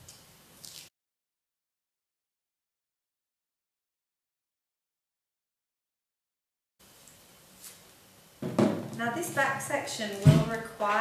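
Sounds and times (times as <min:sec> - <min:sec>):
woman speaking: 0:09.0 - 0:11.0.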